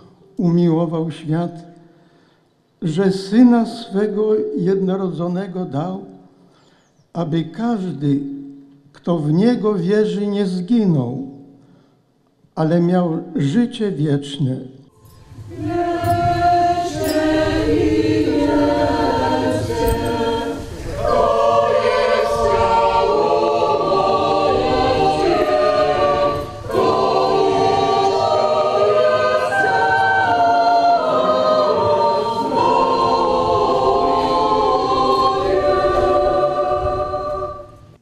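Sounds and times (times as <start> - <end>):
choir singing a hymn: 15.0 - 38.0.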